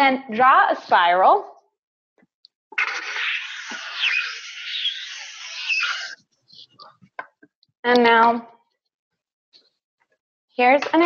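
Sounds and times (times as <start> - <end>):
marker squeaking on paper: 2.7 - 7.0.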